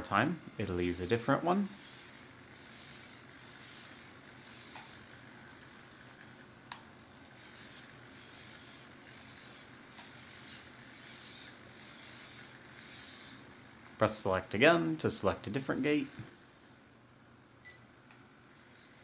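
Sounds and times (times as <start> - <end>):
servo hiss: 0.8 - 16.9, 18.5 - 19.0.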